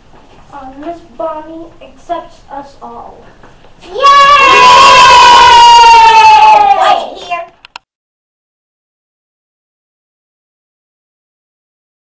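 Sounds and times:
children screaming a high cheer: 0:03.9 - 0:07.0.

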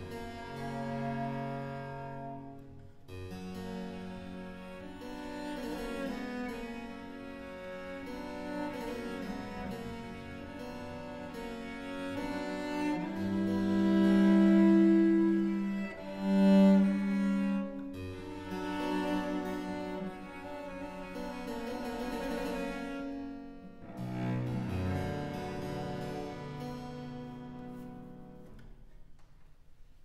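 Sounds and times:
bowed cello notes: 0:00.0 - 0:29.0
harpsichord plucked chords: 0:02.9 - 0:28.4.

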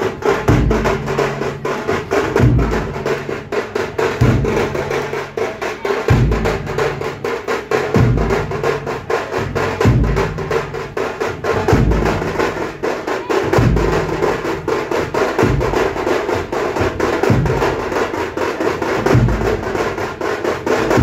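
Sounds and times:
procession drums fast rhythm: 0:00.0 - 0:21.0
deep bass drum boom: 0:04.2 - 0:05.0.

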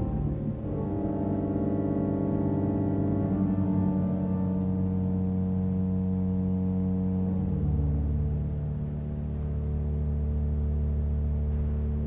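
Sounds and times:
pipe organ chords: 0:00.0 - 0:12.0.

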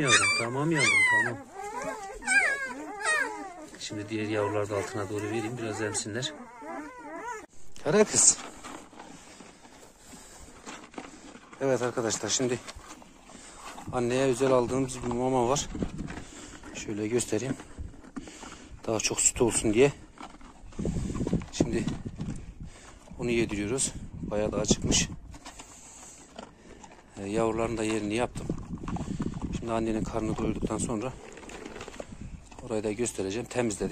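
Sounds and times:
dog eating from plastic bucket: 0:00.0 - 0:33.9
dog chewing food: 0:15.0 - 0:22.2, 0:25.2 - 0:33.8.

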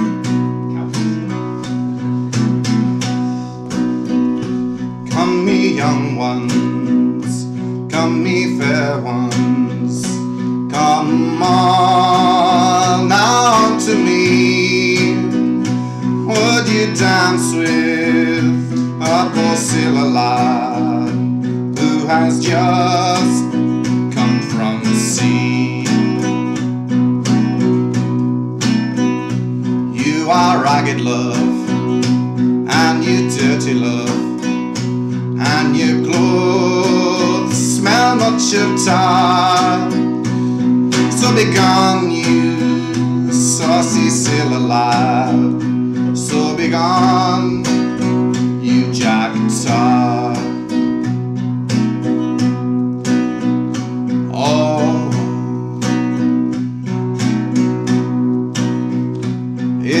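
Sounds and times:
acoustic guitar playing: 0:00.0 - 1:00.0.

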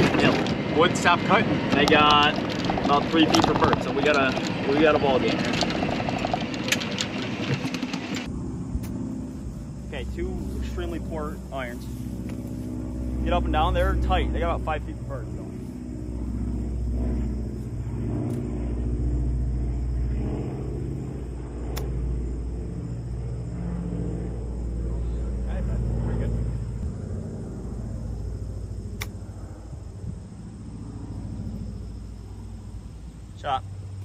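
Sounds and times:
low rumble: 0:00.0 - 0:34.0.

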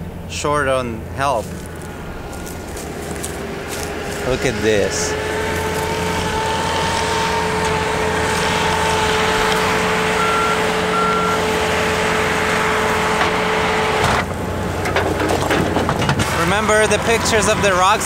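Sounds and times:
high even whine: 0:00.0 - 0:14.7
diesel engine running: 0:00.0 - 0:18.0
short beeps: 0:10.2 - 0:11.4.

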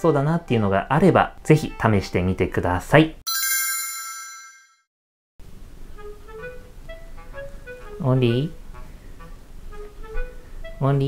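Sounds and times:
light background music: 0:00.0 - 0:03.0, 0:05.8 - 0:11.0
bell-like ding: 0:03.3 - 0:04.8.

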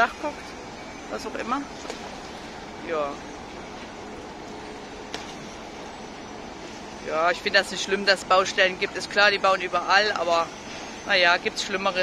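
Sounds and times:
construction site noise: 0:00.0 - 0:12.0
distant traffic: 0:00.0 - 0:12.0
faint steady hum: 0:00.0 - 0:12.0.

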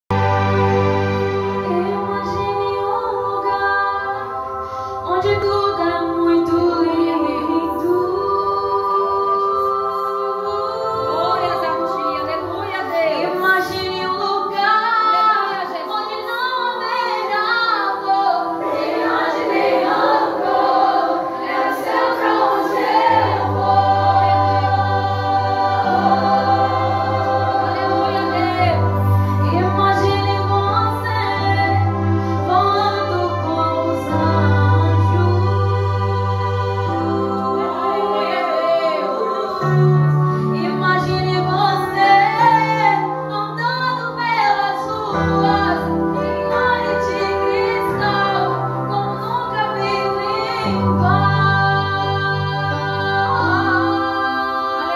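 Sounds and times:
held accompaniment chords: 0:00.1 - 0:54.9
girls singing worship song: 0:01.7 - 0:54.9.

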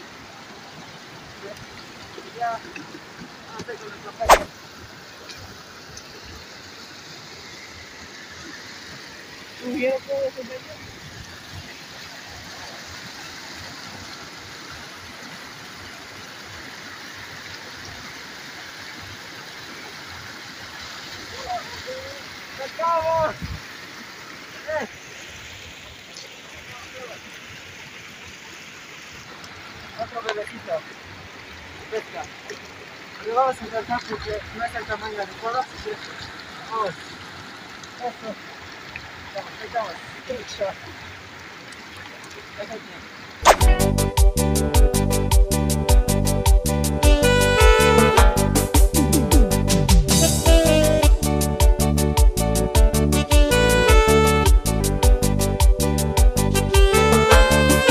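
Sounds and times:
river rushing: 0:00.0 - 0:44.0, 0:47.0 - 0:48.9.

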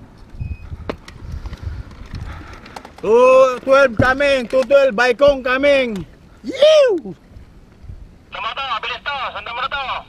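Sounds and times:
bike rolling over gravel: 0:01.0 - 0:05.2.

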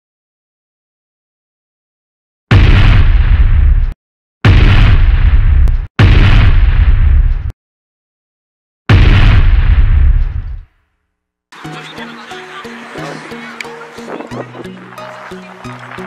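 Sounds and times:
cinematic boom with deep rumble: 0:02.5 - 0:07.5, 0:08.9 - 0:10.6.

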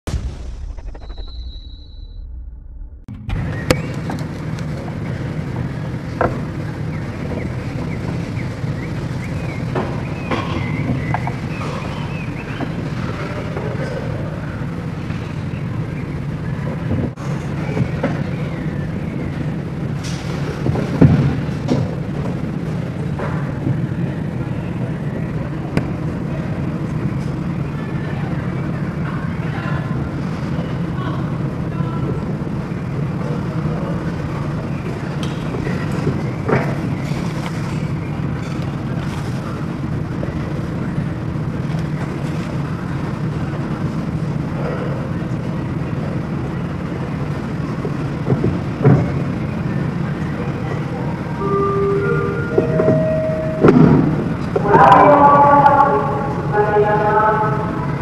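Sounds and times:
low background rumble: 0:00.0 - 0:11.1
faint indistinct voices: 0:03.4 - 0:58.0.

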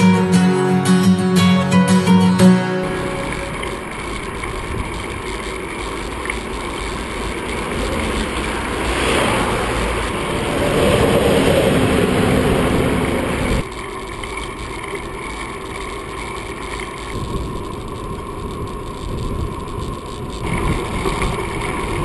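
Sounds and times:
highway traffic: 0:03.5 - 0:13.7
wind rush: 0:03.6 - 0:06.2, 0:06.9 - 0:13.7, 0:17.1 - 0:22.0.

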